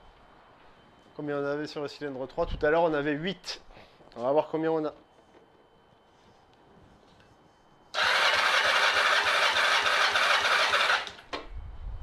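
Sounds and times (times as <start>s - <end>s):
electric starter cranking engine: 7.9s - 11.3s.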